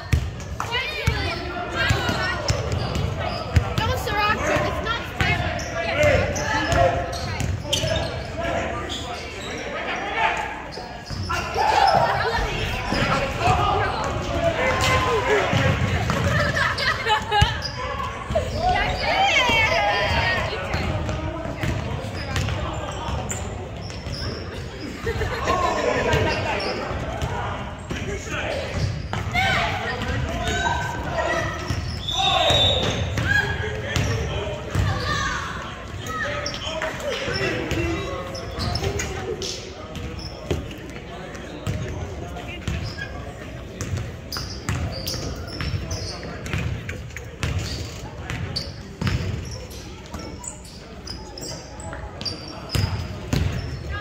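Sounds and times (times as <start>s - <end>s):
players calling out: 0.6s - 54.0s.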